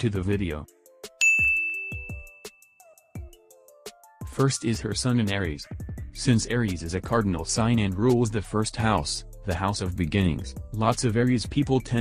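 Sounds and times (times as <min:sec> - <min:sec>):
quiet background beat: 0:00.9 - 0:02.5, 0:03.2 - 0:12.0
bright ding: 0:01.2 - 0:02.8.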